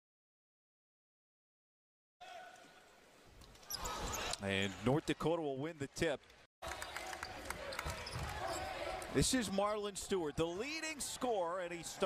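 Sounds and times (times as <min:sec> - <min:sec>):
arena crowd noise: 0:03.7 - 0:12.0.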